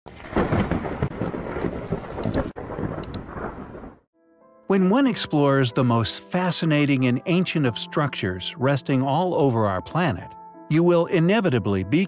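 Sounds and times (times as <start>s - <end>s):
rain-like hiss and crackle: 0.1s - 4.0s
rumbling thunder: 0.1s - 4.0s.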